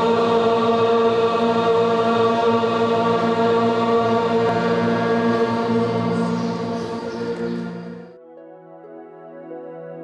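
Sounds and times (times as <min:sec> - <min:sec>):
sustained chanting drone: 0:00.0 - 0:08.2.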